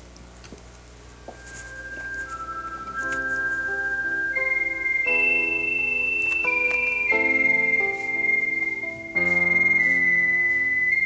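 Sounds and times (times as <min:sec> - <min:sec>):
slow instrumental score: 0:01.1 - 0:11.0.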